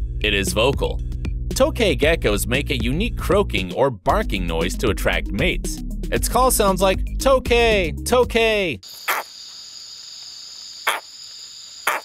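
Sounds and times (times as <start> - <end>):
high-pitched insect trill: 8.8 - 12.0
gecko barking calls: 8.9 - 12.0.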